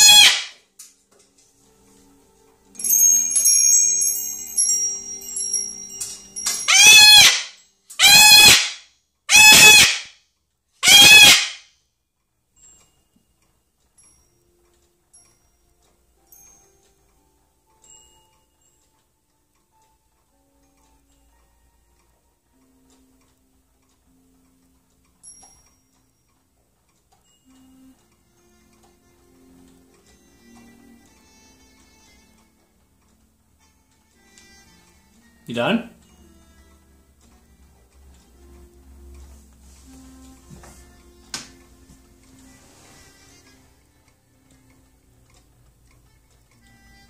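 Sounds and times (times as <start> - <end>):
cockatoo screaming: 0.0 - 0.6, 6.7 - 10.1, 10.8 - 11.6
metal wind chime ringing: 2.8 - 6.7.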